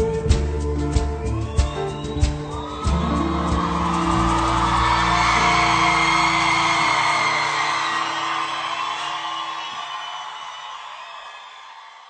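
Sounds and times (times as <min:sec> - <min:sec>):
live band with acoustic guitars: 0:00.0 - 0:09.4
audience cheering and whooping: 0:01.1 - 0:12.0.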